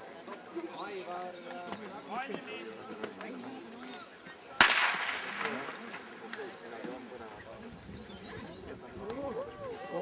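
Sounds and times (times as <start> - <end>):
starter's pistol crack: 4.6 - 5.6.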